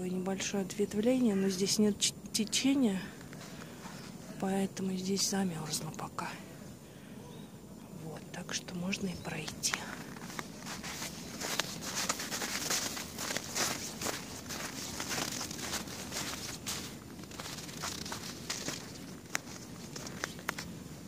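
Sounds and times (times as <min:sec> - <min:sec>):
footsteps in snow: 0:09.2 - 0:21.0.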